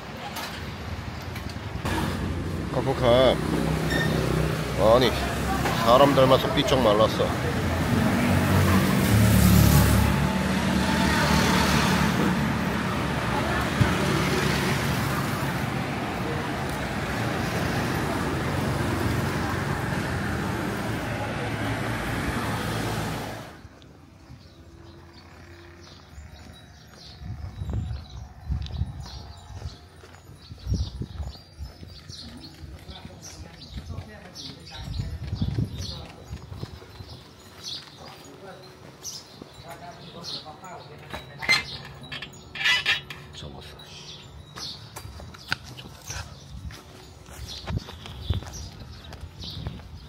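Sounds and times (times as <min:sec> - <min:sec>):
quiet street background: 0:00.0 - 0:50.0
road traffic noise: 0:00.0 - 0:50.0.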